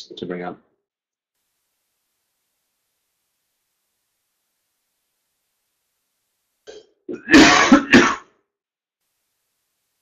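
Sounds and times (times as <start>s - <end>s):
person clearing throat: 7.1s - 8.4s.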